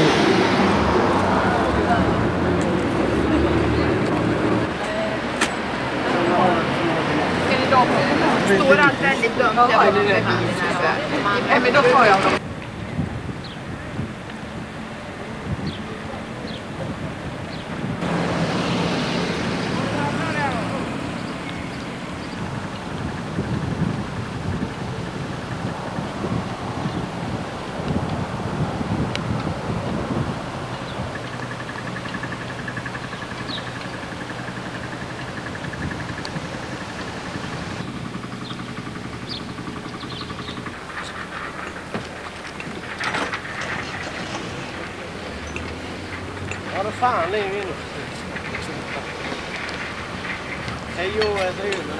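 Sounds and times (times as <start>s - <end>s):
low engine hum: 0.0s - 51.9s
wind on microphone: 12.0s - 46.8s.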